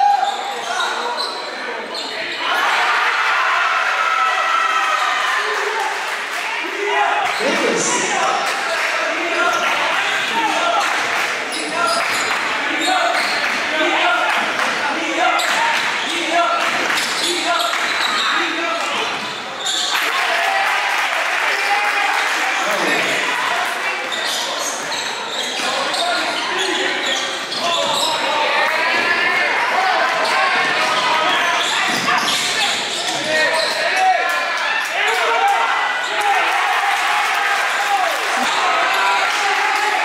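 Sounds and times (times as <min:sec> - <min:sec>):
voices echoing in hall: 0:00.0 - 0:40.0.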